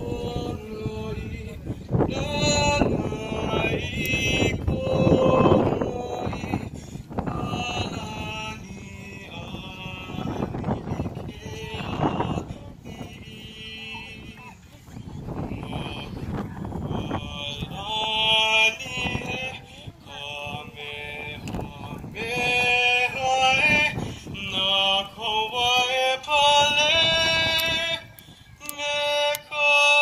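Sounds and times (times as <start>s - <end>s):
voices chanting: 0.0s - 30.0s.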